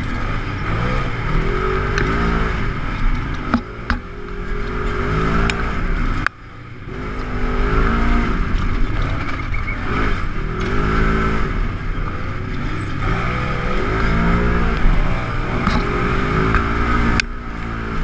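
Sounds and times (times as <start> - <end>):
engine revving: 0.0 - 18.0.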